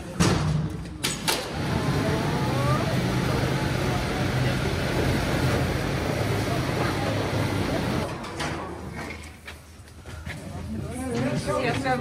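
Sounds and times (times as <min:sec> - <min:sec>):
lift mechanical hum and rumble: 0:00.1 - 0:09.3.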